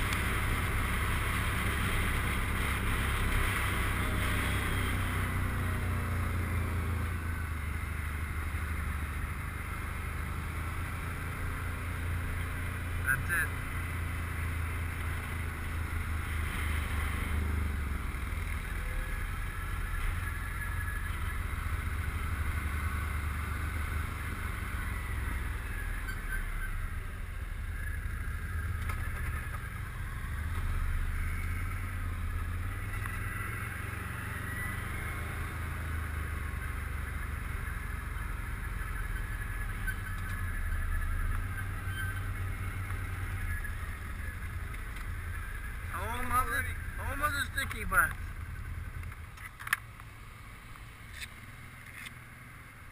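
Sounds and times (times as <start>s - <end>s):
atv engine running: 0.0s - 52.9s.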